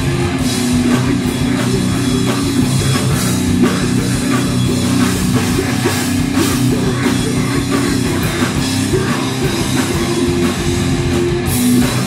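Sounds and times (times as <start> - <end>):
heavy rock band playing: 0.0 - 12.0.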